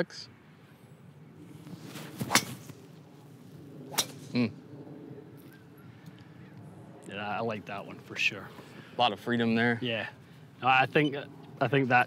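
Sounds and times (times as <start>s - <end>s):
golf club swish: 1.6s - 2.8s.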